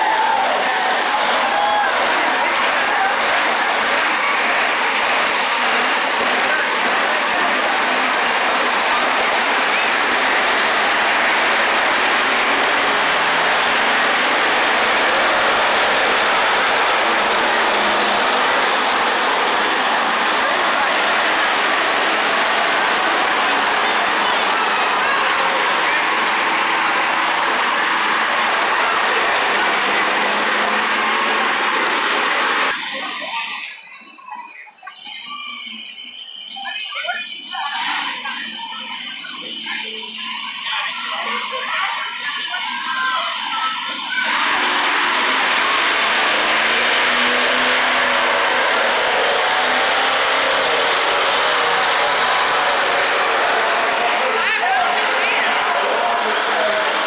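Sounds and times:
monster truck engines running: 0:00.0 - 0:57.0.

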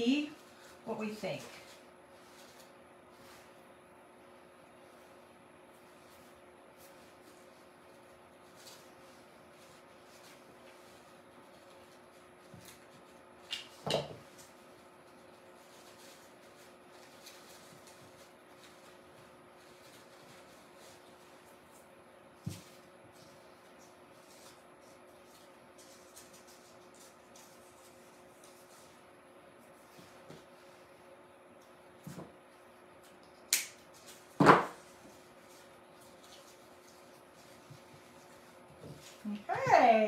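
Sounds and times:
rustling artificial flowers: 0:00.0 - 0:40.0.

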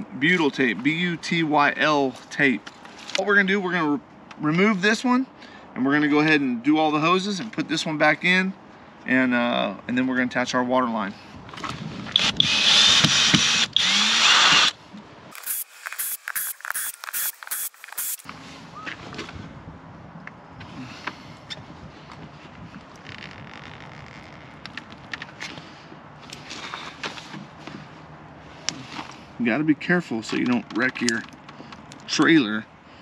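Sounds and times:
power tool whirring: 0:12.1 - 0:18.3.

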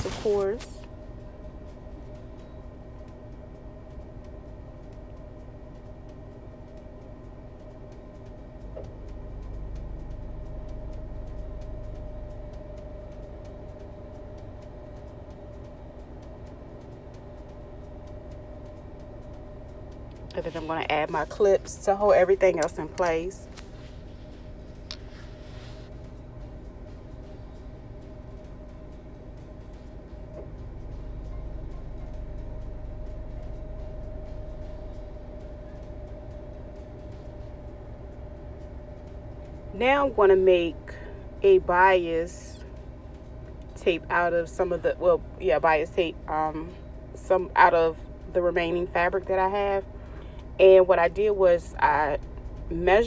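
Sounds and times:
faint steady tone: 0:00.0 - 0:53.0
low background hum: 0:00.0 - 0:53.0
low background rumble: 0:00.0 - 0:53.0.

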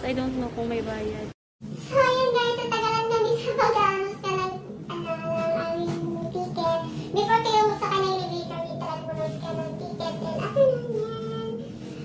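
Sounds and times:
high singing voice with music: 0:01.7 - 0:12.0.

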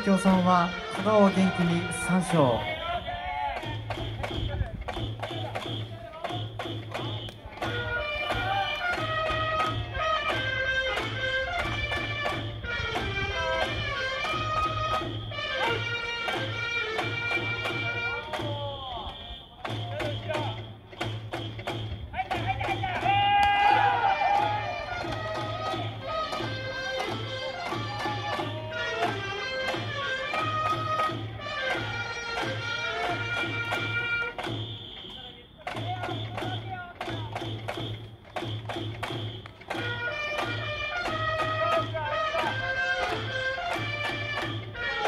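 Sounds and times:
drum beating steady rhythm: 0:00.0 - 0:45.0
electronic whistle: 0:01.6 - 0:08.5, 0:18.2 - 0:24.1, 0:34.0 - 0:40.0.

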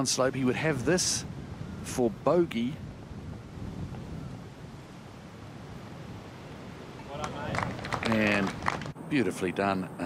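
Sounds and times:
wind rumble on microphone: 0:00.0 - 0:09.1.

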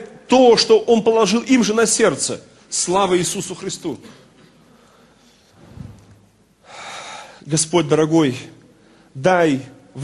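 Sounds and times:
man speaking: 0:00.0 - 0:04.3, 0:07.4 - 0:10.0
man sharp in-breath: 0:06.6 - 0:07.4.

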